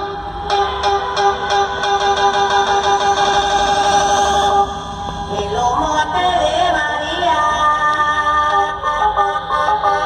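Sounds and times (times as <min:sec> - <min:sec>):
held horn-like chord: 0:00.0 - 0:05.4.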